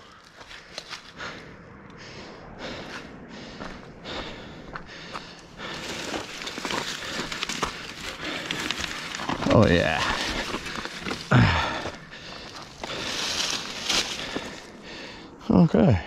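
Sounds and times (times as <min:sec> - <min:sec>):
bike clicks and rattles: 0:05.6 - 0:14.5
bike tyres running over dirt: 0:05.6 - 0:14.7.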